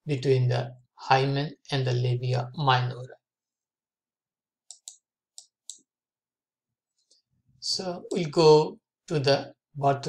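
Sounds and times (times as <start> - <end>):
computer mouse clicks: 4.7 - 5.9.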